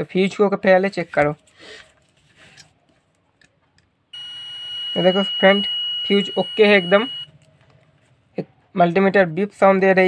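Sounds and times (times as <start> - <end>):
multimeter continuity beep: 4.1 - 7.4.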